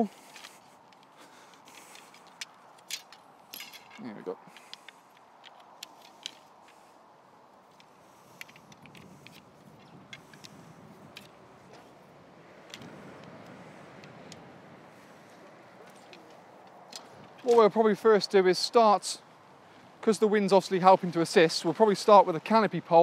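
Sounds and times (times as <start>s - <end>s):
tent poles clicking: 0.0s - 18.9s
quiet outdoor ambience: 0.0s - 23.0s.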